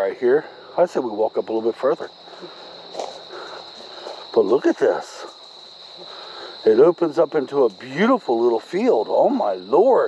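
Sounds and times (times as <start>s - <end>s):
insects singing shrilly: 0.0s - 10.0s
footsteps on grass: 2.2s - 6.6s.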